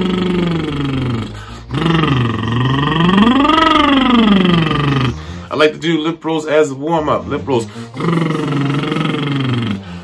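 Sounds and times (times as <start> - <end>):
man doing lip trill: 0.0 - 5.3, 7.8 - 10.0.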